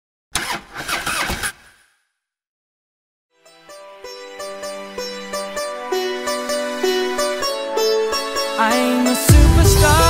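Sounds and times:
loud car engine: 0.4 - 1.9.

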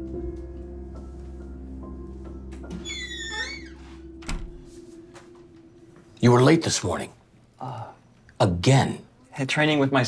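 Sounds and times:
soft background music: 0.0 - 10.0
door hinge squeaking: 2.7 - 4.5.

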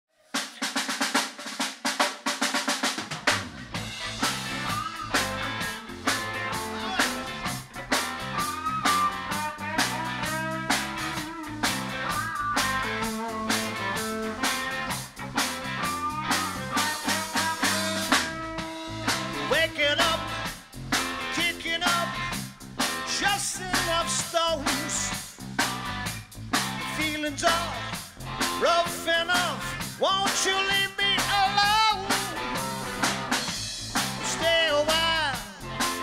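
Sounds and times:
drum fill: 0.3 - 36.0
rock band playing: 0.5 - 36.0.

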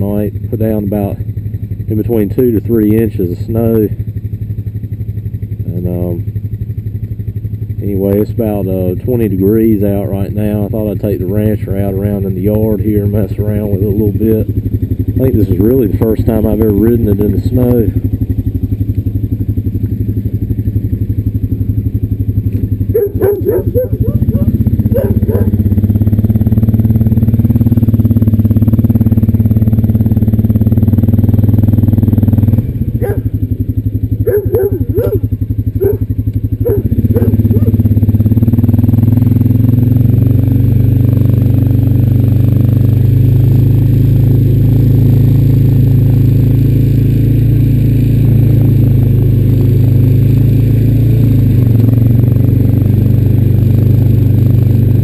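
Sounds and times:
quad bike engine running: 0.0 - 55.0
dog barking: 22.9 - 25.6, 33.0 - 33.3, 34.2 - 37.8.

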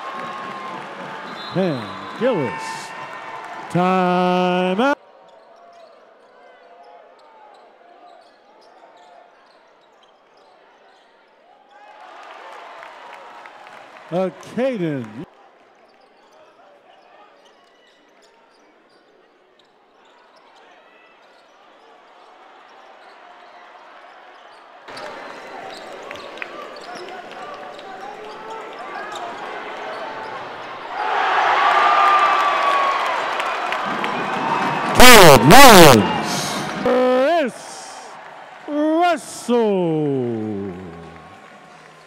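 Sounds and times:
crowd cheering: 0.0 - 5.0, 11.8 - 15.3, 28.9 - 42.0
amplified voice calling out: 3.7 - 5.0, 35.0 - 38.1, 38.7 - 41.2.

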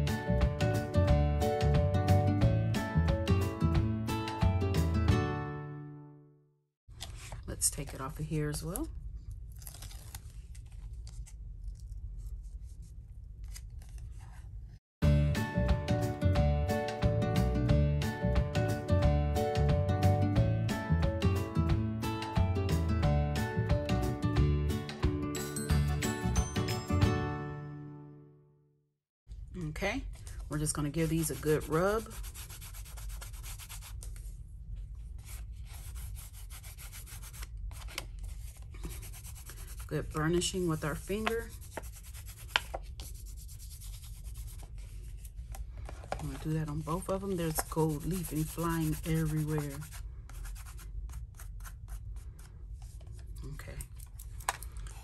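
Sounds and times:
tape liner peeling: 9.5 - 12.0
low steady hum: 29.3 - 55.0
fingertips rubbing on card: 30.9 - 34.1, 35.2 - 39.9, 40.6 - 45.3, 47.4 - 53.0
paper rustling: 44.3 - 50.0.

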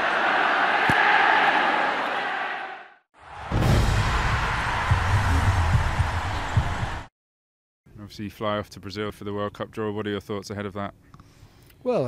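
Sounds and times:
large crowd cheering: 0.0 - 7.1.

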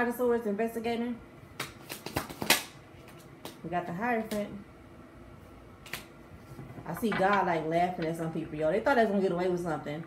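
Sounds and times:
cards being shuffled: 1.6 - 3.6.

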